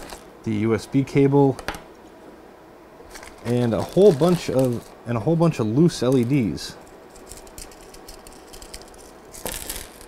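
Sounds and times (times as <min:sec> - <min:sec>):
plastic bag rustling: 0:00.0 - 0:00.3, 0:03.0 - 0:05.0, 0:07.2 - 0:10.0.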